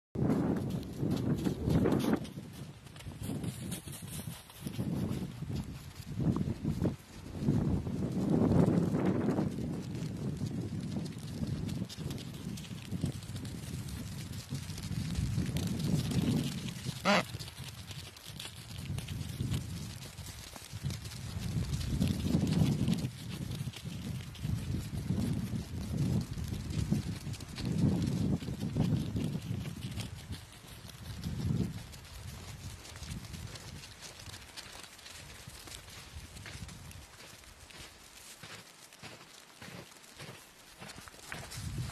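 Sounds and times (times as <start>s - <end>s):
penguin footsteps on packed snow: 0.2s - 41.9s.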